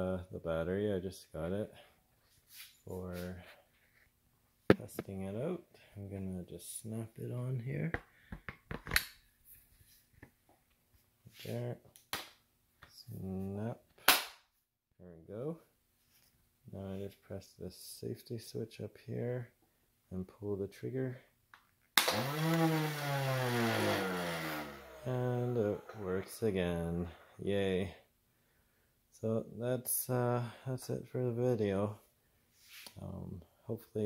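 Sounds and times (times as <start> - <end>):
string trimmer motor spinning: 22.0 - 28.0.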